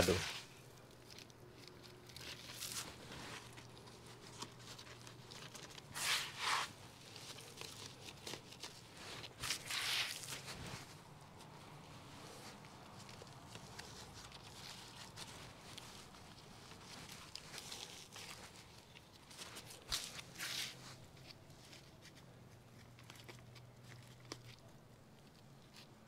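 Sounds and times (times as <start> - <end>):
potting mix rustling and crackling: 0.0 - 26.0.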